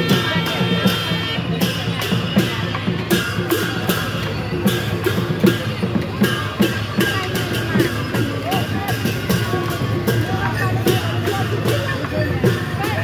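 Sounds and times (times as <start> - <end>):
barrel drums beaten in rhythm: 0.0 - 13.0
sharp cymbal clashes: 0.0 - 13.0.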